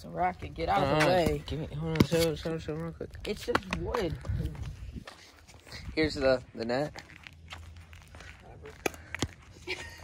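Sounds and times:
footsteps on concrete: 0.4s - 10.0s.

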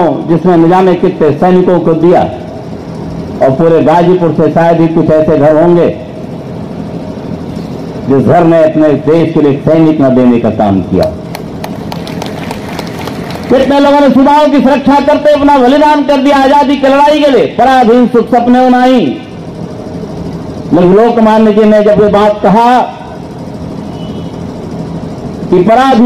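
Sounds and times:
low rumbling background noise: 0.0s - 26.0s
sharp hand claps: 11.3s - 13.5s
crowd hubbub: 11.4s - 13.6s.

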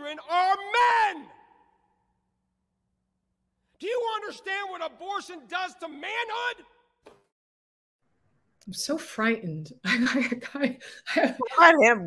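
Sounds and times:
man speaking: 0.0s - 1.3s, 3.8s - 6.6s.

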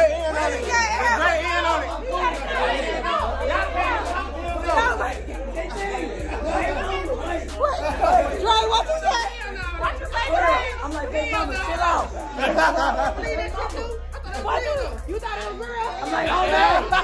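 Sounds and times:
music with deep bass: 0.0s - 17.0s
people talking and shouting: 0.0s - 17.0s.

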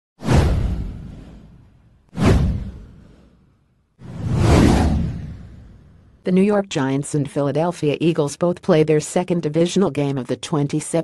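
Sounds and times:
whoosh: 0.2s - 6.2s
deep low rumble: 4.1s - 6.2s.

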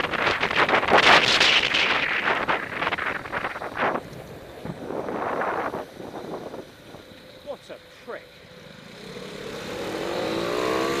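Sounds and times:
motorcycle engine accelerating: 8.2s - 11.0s.

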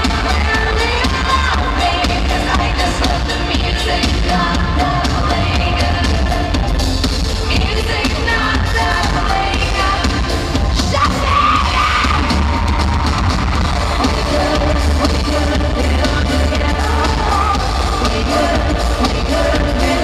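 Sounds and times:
person singing: 0.0s - 6.8s, 7.4s - 20.0s
loud amplified pop music: 0.0s - 20.0s.

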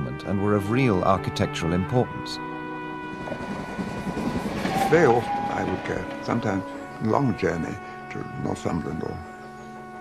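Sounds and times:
background music: 0.0s - 10.0s
train rumbling on rails: 2.8s - 7.4s.

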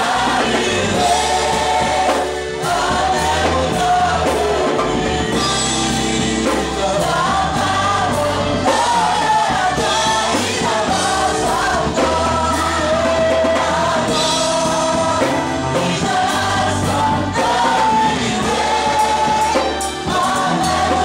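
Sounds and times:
gospel choir singing: 0.0s - 21.0s
low bass: 0.0s - 21.0s.

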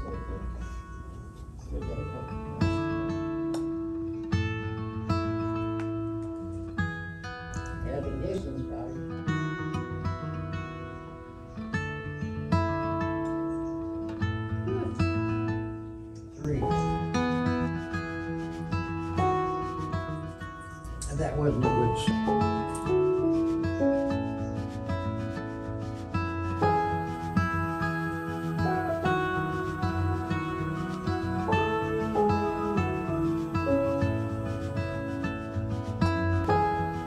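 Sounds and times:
acoustic guitar music: 0.0s - 37.0s
person's voice: 21.0s - 22.4s.

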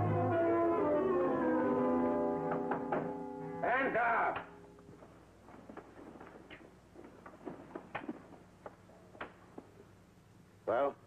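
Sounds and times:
footsteps on hard floor: 4.9s - 8.8s.

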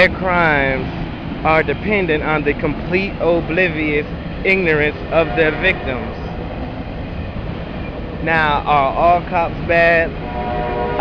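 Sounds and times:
outdoor rumble and hiss: 0.0s - 11.0s.

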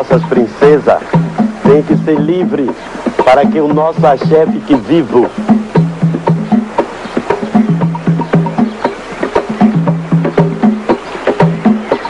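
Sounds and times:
low pitched drum notes: 0.0s - 12.0s
sharp percussion strikes: 0.0s - 12.0s.

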